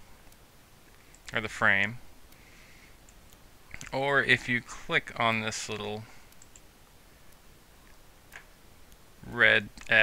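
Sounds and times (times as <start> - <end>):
computer mouse clicks: 0.2 - 1.4, 3.0 - 4.0, 6.3 - 6.7.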